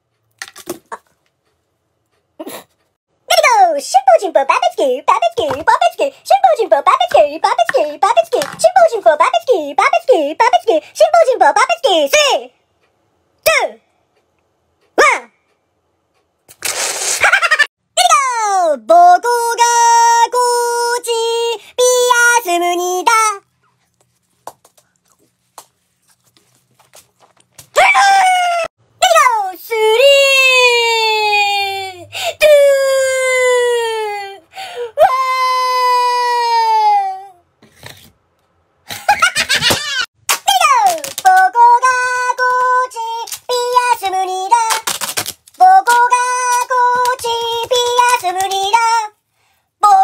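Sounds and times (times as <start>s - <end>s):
high-pitched voice chanting: 3.3s - 12.5s, 15.0s - 15.4s, 18.0s - 23.5s, 27.8s - 37.4s, 40.5s - 44.9s, 45.6s - 49.2s.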